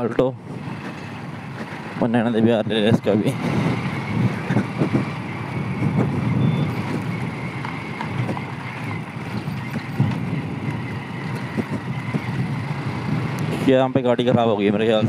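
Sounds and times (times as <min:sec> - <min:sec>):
motorcycle engine running: 0:00.0 - 0:15.0
tyres on dirt road: 0:00.0 - 0:15.0
wind: 0:00.0 - 0:15.0.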